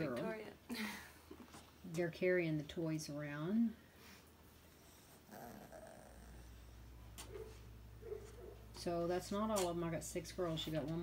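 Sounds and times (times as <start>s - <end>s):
puppy vocal sound: 4.8s - 8.7s.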